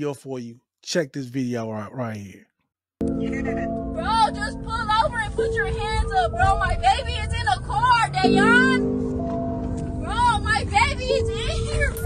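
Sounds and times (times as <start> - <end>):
background music: 3.0 - 12.0
road and engine rumble: 3.7 - 12.0.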